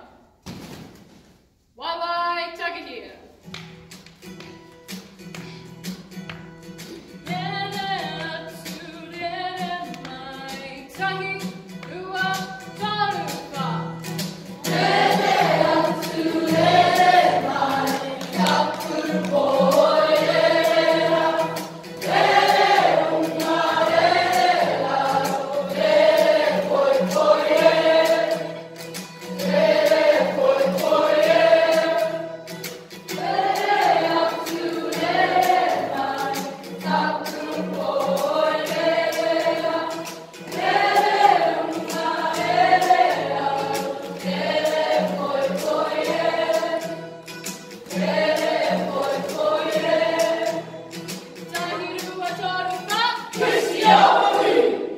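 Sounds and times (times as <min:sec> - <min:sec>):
group singing: 0:14.4 - 0:51.2, 0:53.2 - 0:54.9.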